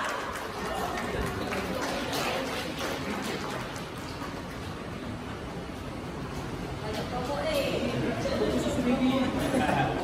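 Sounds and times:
scattered clapping: 0:00.0 - 0:05.1.

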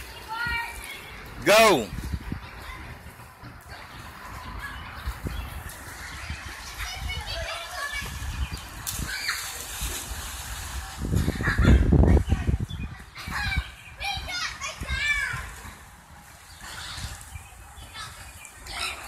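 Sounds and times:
children shouting and playing: 0:00.0 - 0:10.1, 0:10.8 - 0:19.0
water splashing: 0:00.0 - 0:19.0.

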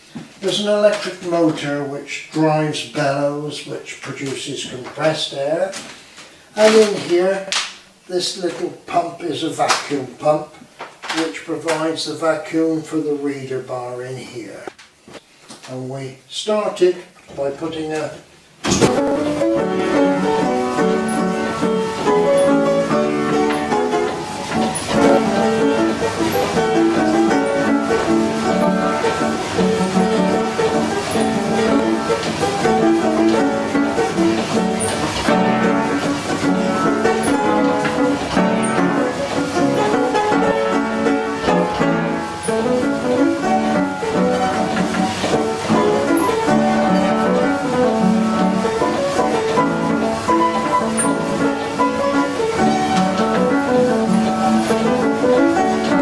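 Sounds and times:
player piano playing: 0:18.6 - 0:56.0.

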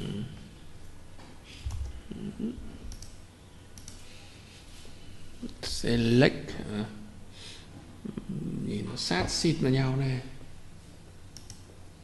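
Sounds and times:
computer mouse clicks: 0:02.9 - 0:03.2, 0:03.8 - 0:04.1, 0:11.3 - 0:11.7.

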